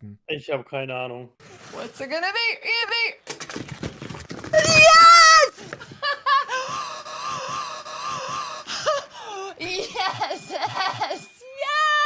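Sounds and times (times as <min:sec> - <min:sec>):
woman shrieking excitedly: 0:04.6 - 0:05.6, 0:11.0 - 0:12.0.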